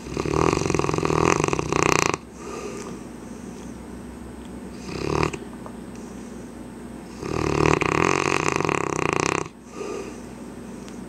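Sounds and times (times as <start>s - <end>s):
dog snoring: 0.0s - 3.0s, 4.7s - 5.4s, 7.1s - 10.3s.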